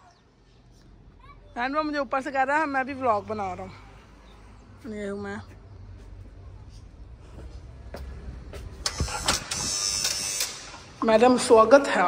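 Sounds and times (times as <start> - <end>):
electric door lock buzzing: 8.8 - 11.0.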